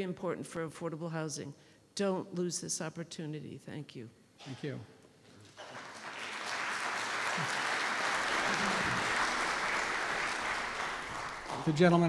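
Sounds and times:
audience applauding: 5.5 - 12.0.

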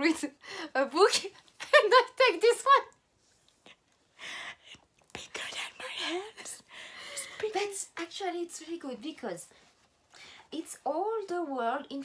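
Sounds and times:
woman whispering: 5.1 - 7.6.

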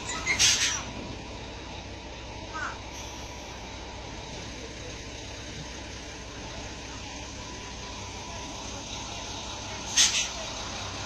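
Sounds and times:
diesel truck engine running: 0.0 - 11.0.

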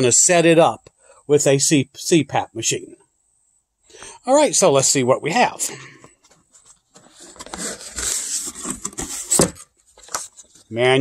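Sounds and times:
cardboard box lid scraping: 7.0 - 10.5.

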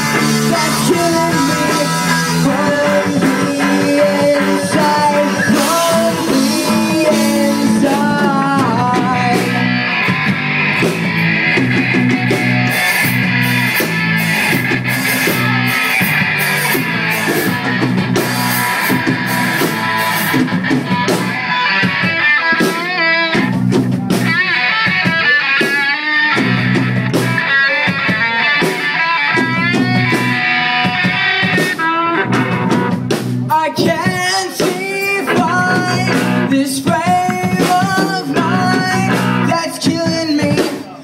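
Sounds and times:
bass guitar: 0.0 - 41.0
drum kit: 0.0 - 41.0
lead electric guitar: 0.0 - 41.0.

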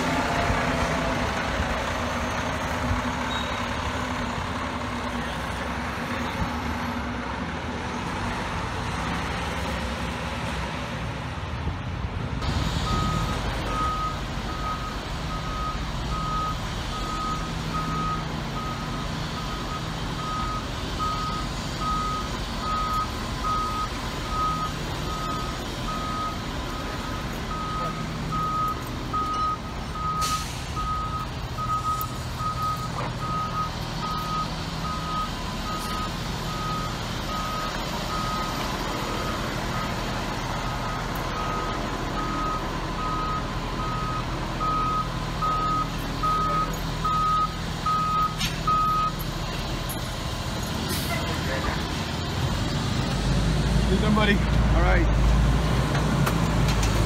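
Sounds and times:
diesel engine idling: 0.0 - 10.0, 12.4 - 57.0
backup alarm beeping: 12.9 - 38.6, 40.7 - 49.2.

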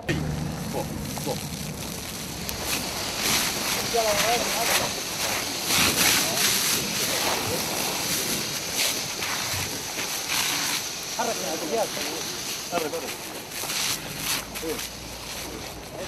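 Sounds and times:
hose nozzle spraying foam: 0.0 - 16.0
voices: 0.0 - 16.0.

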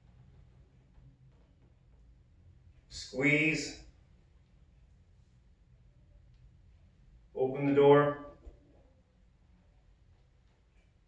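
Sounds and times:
faint low hum: 0.0 - 11.0
man speaking: 2.9 - 3.9, 7.4 - 8.4.

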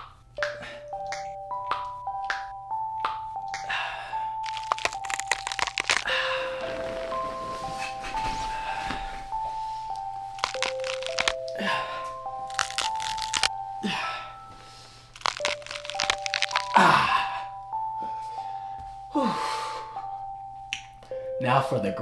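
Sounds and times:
background music held notes: 0.0 - 22.0
joint cracking sounds: 4.4 - 6.1, 10.4 - 11.6, 12.5 - 13.5, 15.1 - 16.8.

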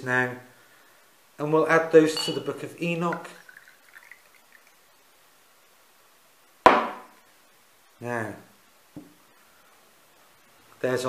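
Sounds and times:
glass knocking on tabletop: 2.2 - 2.5.

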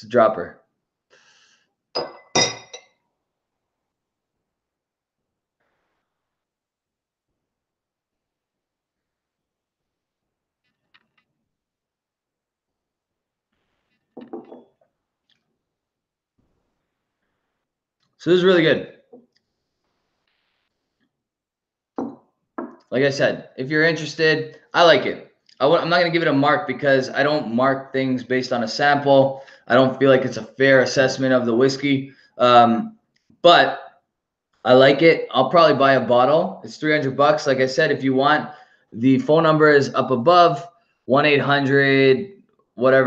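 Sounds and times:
man speaking: 0.0 - 0.6, 18.2 - 18.9, 22.9 - 33.8, 34.7 - 43.0
glass dropper clinking on glass: 2.0 - 2.9, 14.2 - 14.7.

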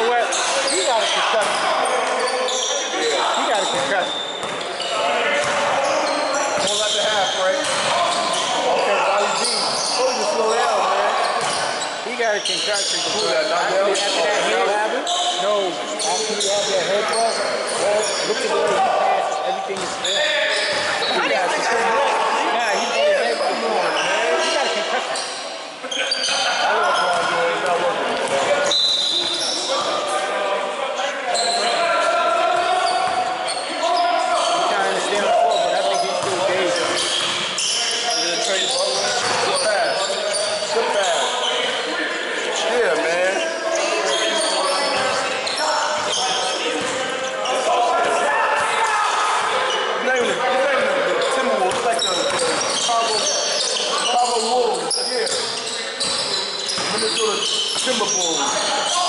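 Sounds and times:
sneakers squeaking: 0.0 - 30.2, 31.3 - 50.5, 51.1 - 59.0
players calling out: 0.0 - 59.0
basketball bouncing on gym floor: 3.7 - 4.6.

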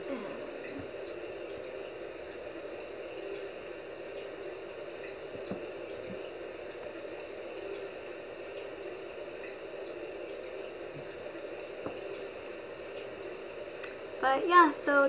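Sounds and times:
room hiss and hum: 0.0 - 15.0.

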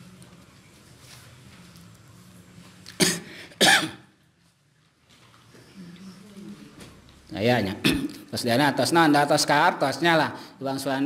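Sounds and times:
man coughing into microphone: 3.0 - 4.1, 7.8 - 8.3.

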